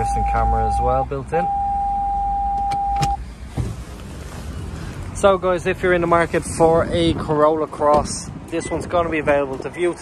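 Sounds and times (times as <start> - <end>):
high electronic reversing beep: 1.4 - 3.2.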